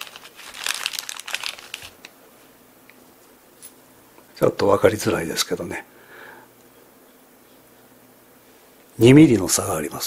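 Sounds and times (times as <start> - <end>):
plastic bag crinkling: 0.0 - 2.1.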